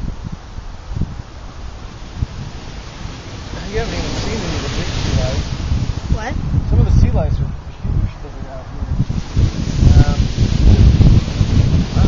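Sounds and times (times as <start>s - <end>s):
surf breaking on beach: 0.0s - 6.9s, 8.8s - 12.0s
wind buffeting microphone: 0.0s - 12.0s.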